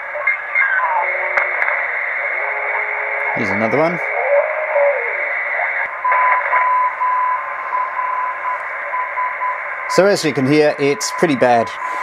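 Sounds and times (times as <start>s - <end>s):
radio receiver hiss: 0.0s - 6.8s.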